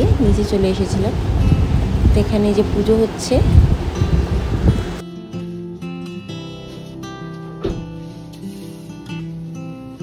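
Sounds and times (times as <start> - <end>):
acoustic guitar strumming: 3.8 - 10.0.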